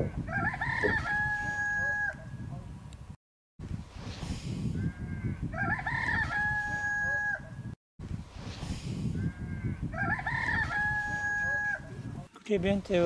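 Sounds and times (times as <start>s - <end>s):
rooster crowing: 0.3s - 2.2s, 5.0s - 7.5s, 9.4s - 11.9s.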